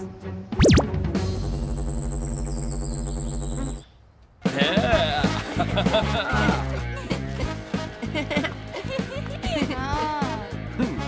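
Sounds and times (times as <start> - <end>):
background music: 0.0 - 1.7, 4.4 - 11.0
electronic hum: 0.6 - 3.9.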